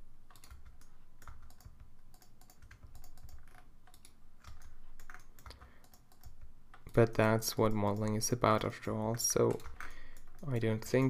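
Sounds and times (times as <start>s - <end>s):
keyboard keys clicking: 0.3s - 11.0s.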